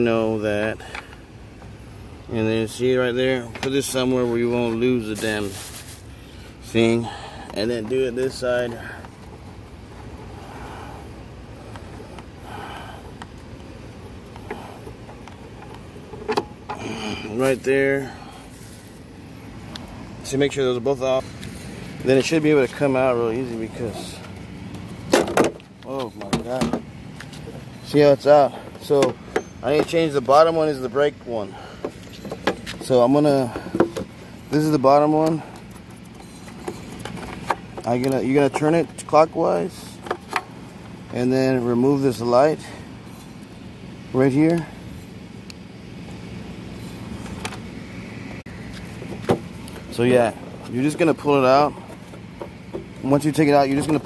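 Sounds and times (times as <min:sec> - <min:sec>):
low steady rumble: 0:00.0 - 0:54.0
outdoor background noise: 0:00.0 - 0:54.0.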